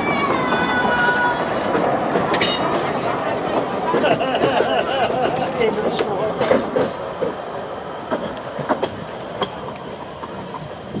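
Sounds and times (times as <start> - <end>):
train wheels clacking over rail joints: 0.0 - 11.0.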